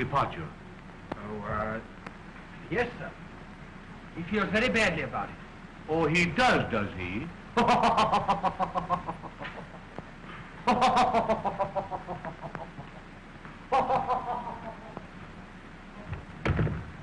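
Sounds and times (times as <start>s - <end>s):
film soundtrack hiss: 0.0s - 17.0s
man laughing: 7.6s - 9.9s, 10.7s - 13.1s, 13.7s - 15.1s
heavy thump: 16.4s - 17.0s.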